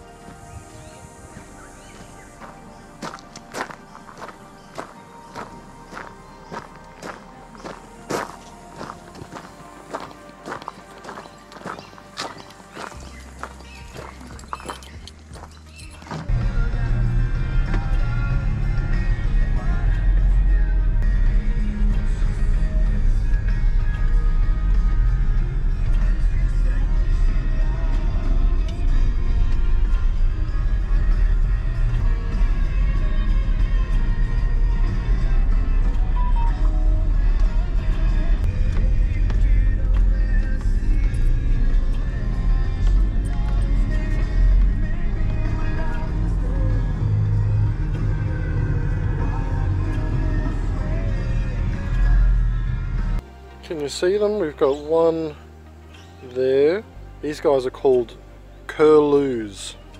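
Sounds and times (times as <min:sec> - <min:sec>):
footsteps crunching on gravel: 0:00.3 - 0:16.3.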